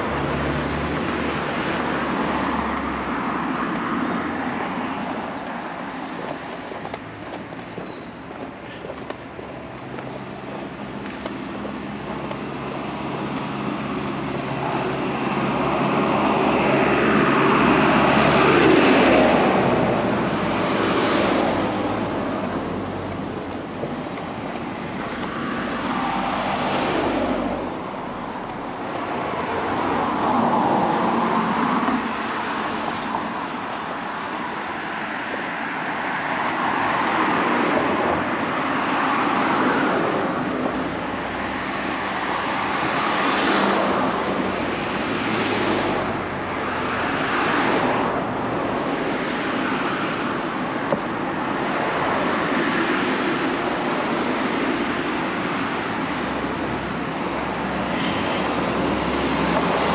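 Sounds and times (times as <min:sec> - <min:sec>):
vehicles driving past: 0:00.0 - 0:59.9.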